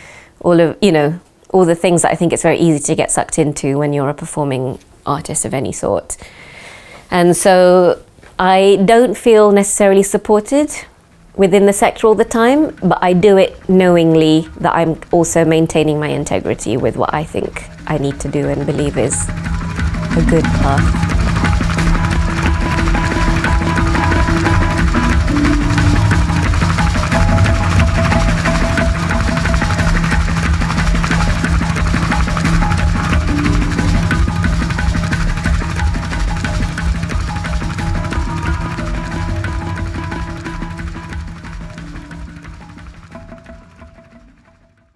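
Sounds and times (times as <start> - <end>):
music with low drone and percussion: 11.8 - 44.9.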